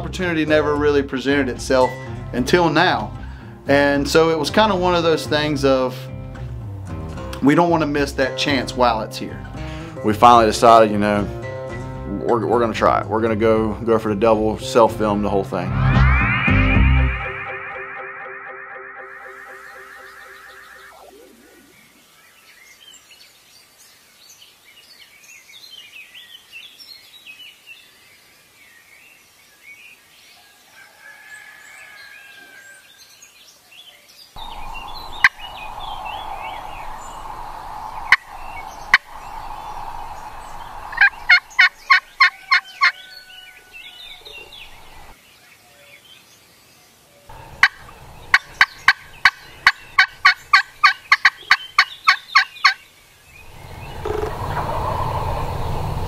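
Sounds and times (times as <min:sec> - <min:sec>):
faint birdsong chirps: 0:19.0 - 0:56.0
turkey yelping: 0:40.9 - 0:43.6, 0:47.5 - 0:52.8, 0:53.8 - 0:55.4.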